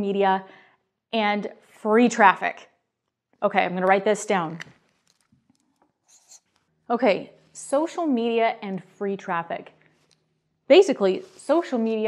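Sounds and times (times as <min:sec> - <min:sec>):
marker scratching on whiteboard: 0:06.0 - 0:06.6.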